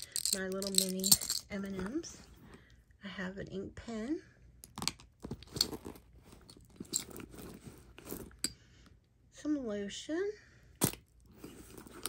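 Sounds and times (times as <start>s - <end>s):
rummaging in a leather handbag: 0.0s - 2.6s, 4.7s - 8.5s, 10.8s - 12.0s.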